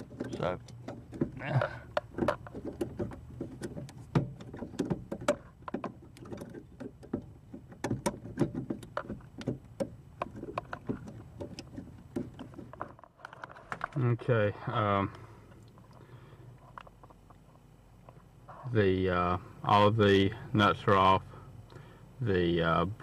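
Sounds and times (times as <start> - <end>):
small metallic knocks: 0.0 - 14.0.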